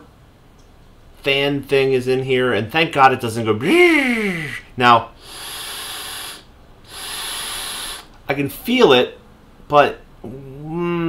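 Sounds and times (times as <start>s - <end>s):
vape draw hiss with whine: 5.2s - 8.2s.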